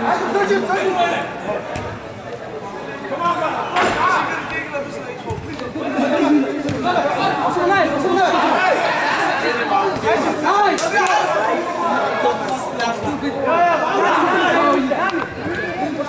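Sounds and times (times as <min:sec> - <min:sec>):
crowd chatter in arena: 0:00.0 - 0:16.0.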